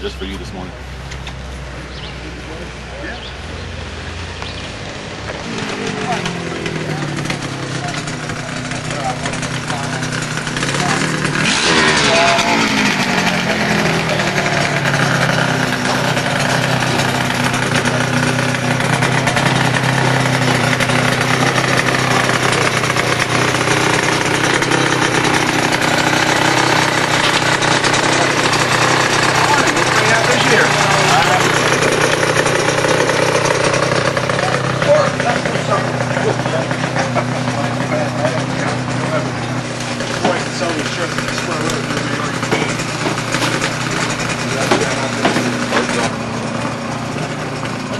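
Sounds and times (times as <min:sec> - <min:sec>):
motorcycle engine passing: 0:00.0 - 0:47.9
voices in background: 0:01.8 - 0:03.6.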